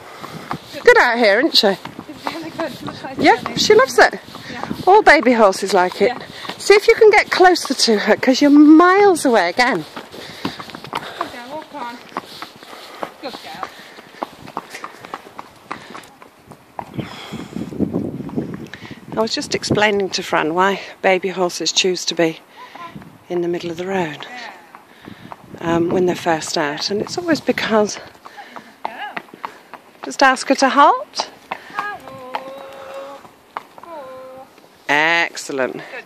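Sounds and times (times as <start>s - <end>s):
person's footsteps: 0.0s - 18.8s, 22.8s - 34.8s
horse hooves clip-clopping on tarmac: 0.0s - 36.0s.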